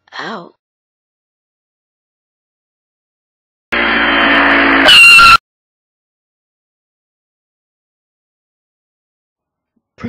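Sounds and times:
tyre squeal: 4.8s - 5.4s.

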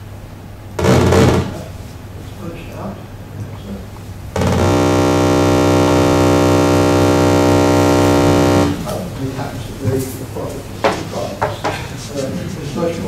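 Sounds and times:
electronic buzzing tone: 0.8s - 1.6s, 4.3s - 9.0s.

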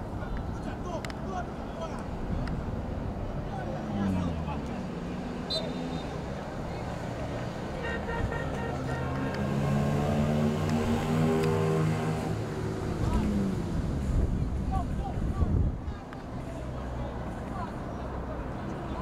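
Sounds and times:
outdoor background noise: 0.0s - 19.0s
players and spectators calling out: 3.4s - 6.9s, 7.6s - 9.5s.

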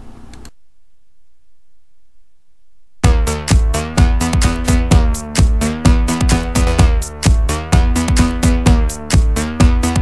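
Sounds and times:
microphone room hum and hiss: 0.0s - 3.6s.

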